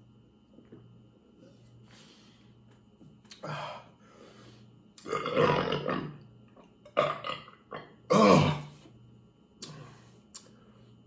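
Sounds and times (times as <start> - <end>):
man belching: 5.0 - 6.2, 6.8 - 8.7.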